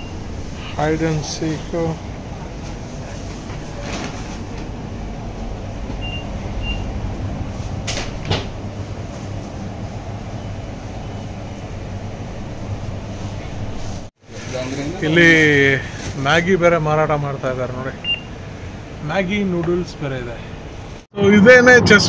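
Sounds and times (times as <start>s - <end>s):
shop interior rumble and hum: 0.0s - 22.0s.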